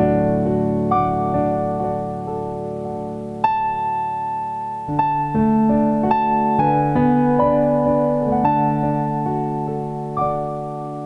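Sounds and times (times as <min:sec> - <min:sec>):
solo piano hymn chords: 0:00.0 - 0:11.0.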